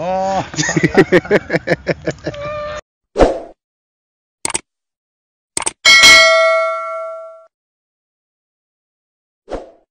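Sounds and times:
bell ding: 5.8 - 7.5.

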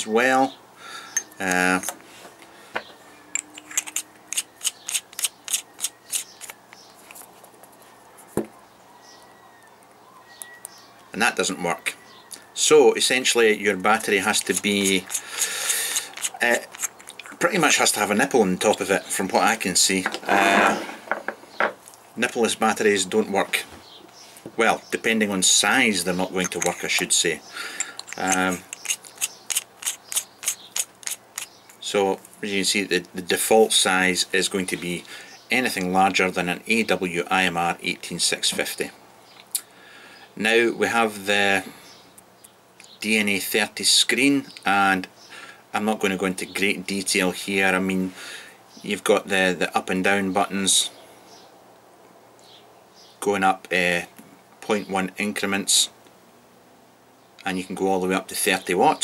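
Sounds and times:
metal tube screwing clicks: 3.3 - 7.3, 14.0 - 19.5, 26.1 - 27.2, 27.8 - 32.4.

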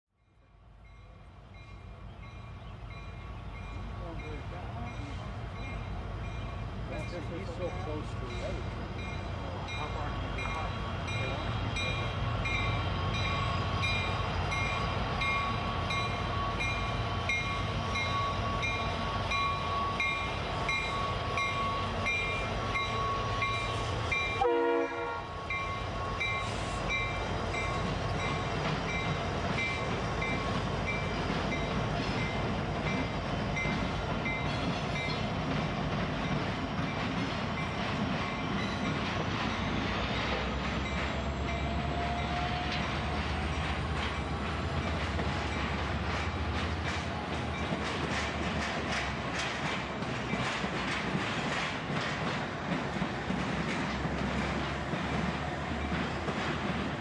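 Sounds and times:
train bell ringing: 0.2 - 35.4, 36.2 - 46.0
freight train passing: 0.2 - 57.0.

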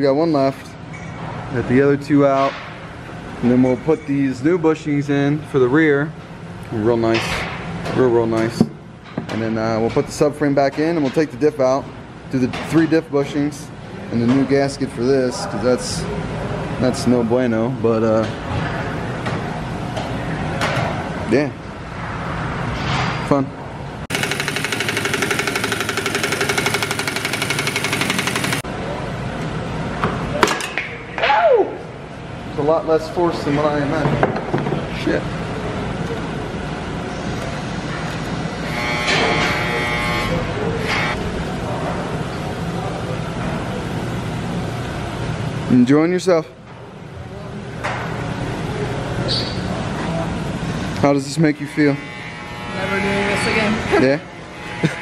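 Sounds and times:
steady low hum and hiss: 0.0 - 24.1, 28.6 - 38.7.

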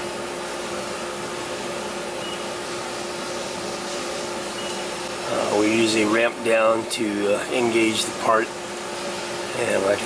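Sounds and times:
machine-shop hum: 0.0 - 10.0
keypad beep: 2.2 - 2.4.

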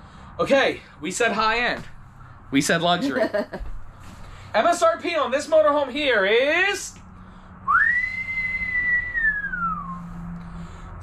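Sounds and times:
person whistling: 7.7 - 10.1.

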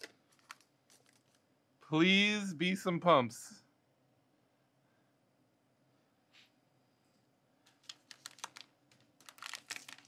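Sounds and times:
plastic wrapper crinkling: 0.0 - 1.4, 7.7 - 10.0.

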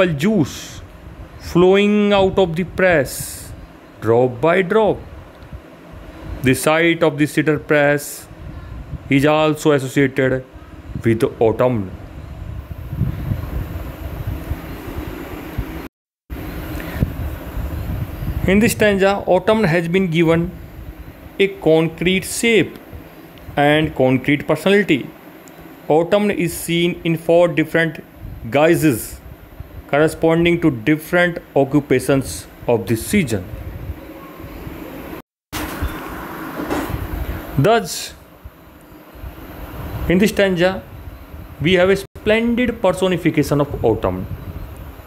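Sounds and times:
room rumble and hiss: 0.0 - 45.0.

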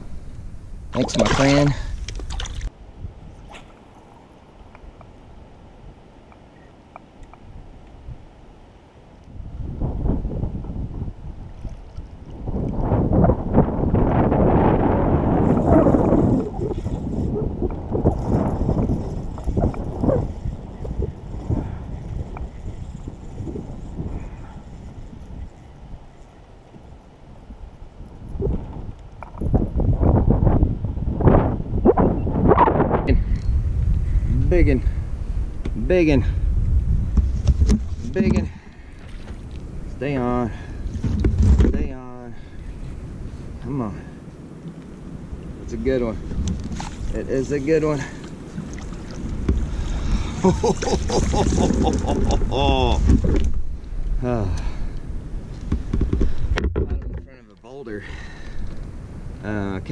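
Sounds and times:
wind buffeting microphone: 9.3 - 59.9.

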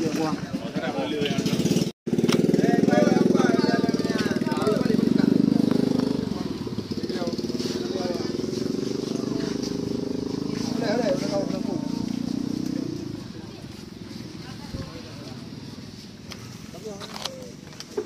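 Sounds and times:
men talking: 0.0 - 13.8, 16.5 - 17.8
small motorcycle engine idling: 0.0 - 18.0.

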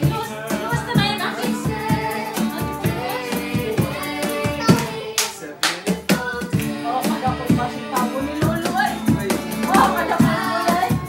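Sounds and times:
acoustic guitar: 0.0 - 11.0
group singing: 0.0 - 11.0
hand claps: 4.7 - 6.7.

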